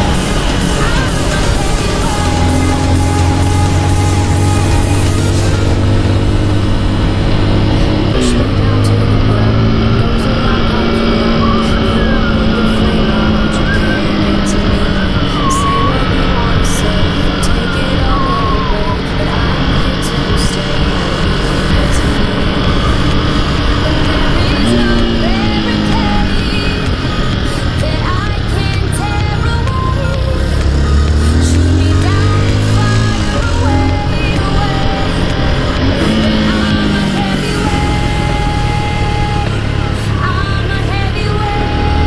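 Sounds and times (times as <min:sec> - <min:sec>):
background music: 0:00.0 - 0:42.0
motorcycle engine revving: 0:00.0 - 0:42.0.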